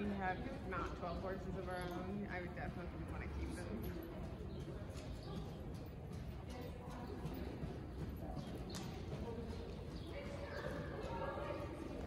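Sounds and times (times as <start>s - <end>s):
horse trotting on sand: 0.0s - 12.0s.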